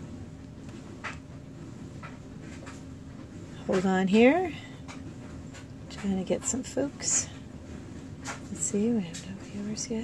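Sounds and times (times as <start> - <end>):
low room hum: 0.0 - 10.0
woman speaking: 3.6 - 4.8, 5.9 - 7.4, 8.5 - 10.0.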